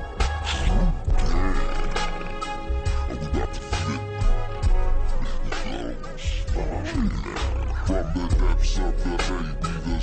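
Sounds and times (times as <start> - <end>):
deep bass beat: 0.0 - 10.0
sliding pitched-down growls: 0.7 - 3.6.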